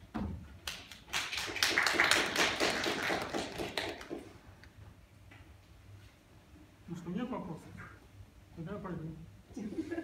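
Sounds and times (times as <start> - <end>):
audience applauding: 0.6 - 4.3.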